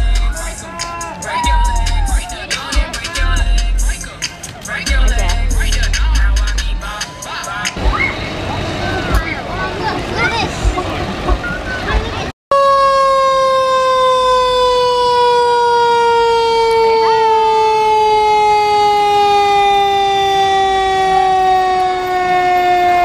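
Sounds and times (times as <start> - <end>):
crowd voices: 0.0 - 12.3
fire engine siren falling tone: 12.5 - 23.0.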